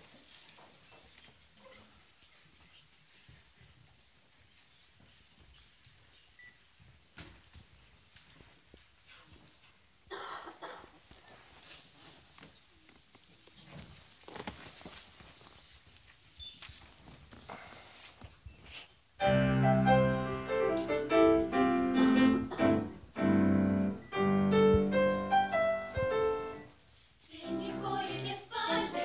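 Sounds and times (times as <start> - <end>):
audience shuffling and rustling: 0.0 - 29.0.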